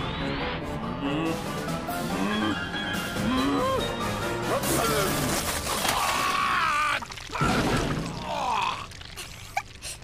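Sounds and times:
loud crashing slime splat: 7.1s - 9.0s.

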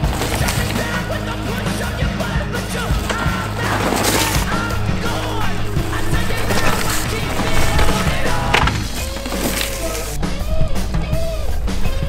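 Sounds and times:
mountain bike clattering over rocks: 0.0s - 10.2s.

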